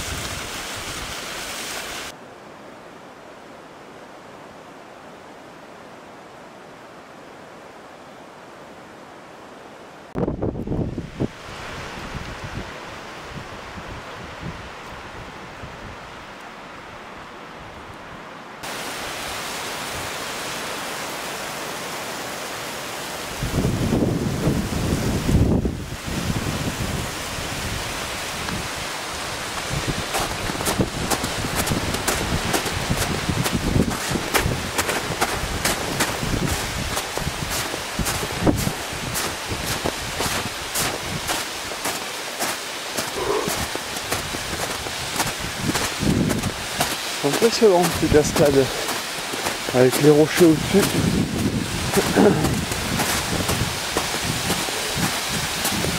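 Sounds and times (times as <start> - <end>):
waterfall rushing: 0.0 - 2.2, 18.5 - 55.9
wind buffeting microphone: 10.2 - 16.1, 23.4 - 28.8, 29.6 - 42.0, 43.0 - 47.0, 50.5 - 55.9
footsteps crunching in snow: 29.2 - 55.9.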